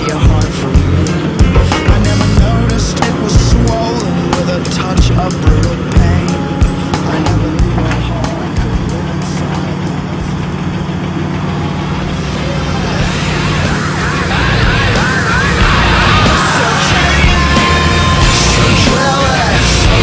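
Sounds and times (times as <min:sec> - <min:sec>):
drilling rig engine running: 0:00.0 - 0:20.0.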